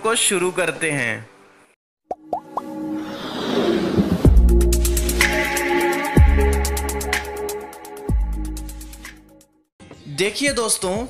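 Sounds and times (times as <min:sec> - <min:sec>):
quick pops rising in pitch: 0:02.1 - 0:02.8
whoosh: 0:02.9 - 0:04.6.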